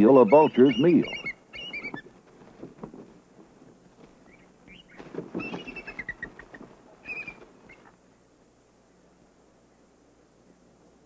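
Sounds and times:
birds of prey squabbling calls: 0.0 - 2.2, 4.2 - 8.0
low scuffling noise: 1.8 - 8.0.

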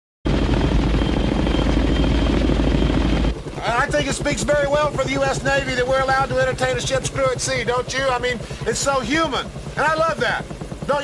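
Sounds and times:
helicopter cabin sound: 0.3 - 11.0
helicopter rotor chop: 0.3 - 11.0
faint high whine: 0.6 - 11.0.

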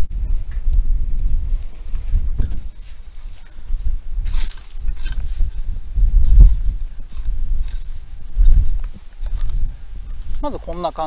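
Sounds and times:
faint scratching of soil: 1.6 - 11.0.

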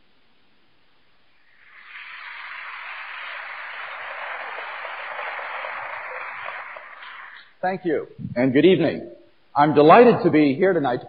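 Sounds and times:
audience applause: 1.5 - 7.5.

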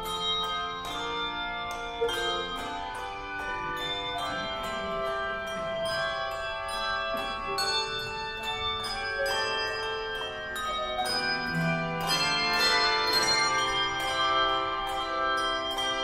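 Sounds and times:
handbell choir playing: 0.0 - 16.0.

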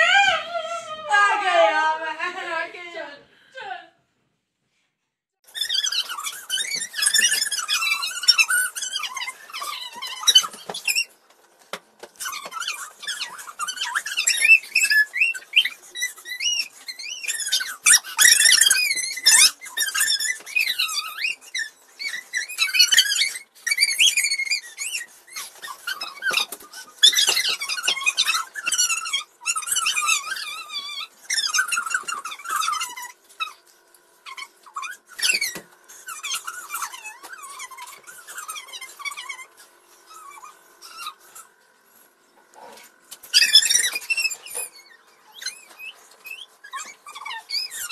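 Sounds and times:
high-pitched squealing voices: 0.0 - 3.1, 5.5 - 11.1, 12.2 - 33.6, 34.2 - 41.5, 43.2 - 47.9.

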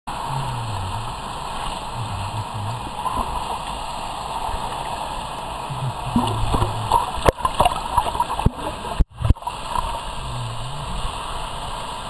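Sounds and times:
low muffled tones: 0.1 - 3.9, 5.4 - 11.5
muffled underwater rush: 0.1 - 12.0.

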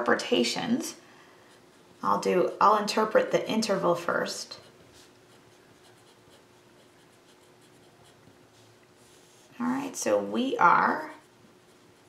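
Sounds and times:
pen scratching on paper: 4.5 - 8.3, 10.8 - 12.0.

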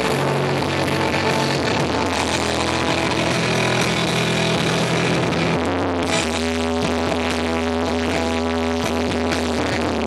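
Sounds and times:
live rock band playing loudly: 0.0 - 10.0.

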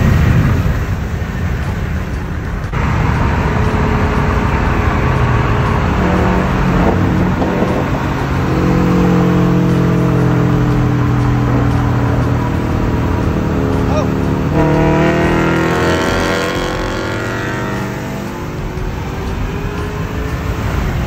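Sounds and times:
car road and engine noise: 0.0 - 21.0.

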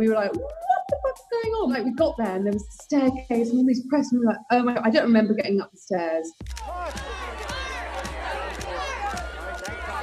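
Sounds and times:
photographers shouting: 6.6 - 10.0.

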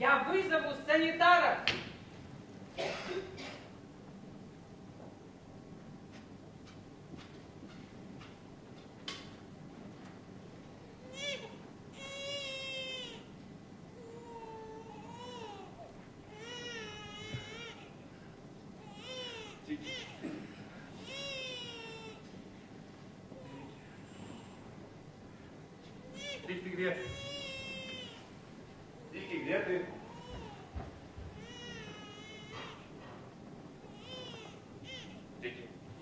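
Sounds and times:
cat meowing: 26.1 - 28.3.

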